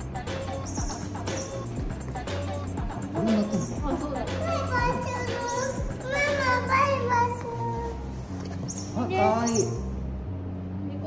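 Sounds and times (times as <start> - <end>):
background music low notes: 0.0 - 11.0.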